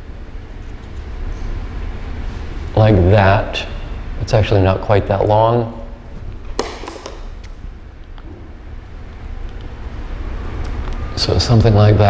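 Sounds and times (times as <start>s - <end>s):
tape and paper handling clicks: 6.5s - 7.6s.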